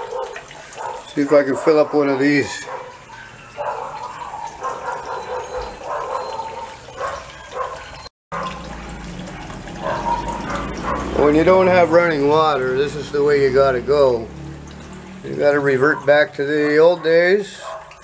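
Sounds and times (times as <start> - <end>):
distant dog barking: 0.0 - 14.2, 15.4 - 18.0
water trickling into bucket: 0.0 - 18.0.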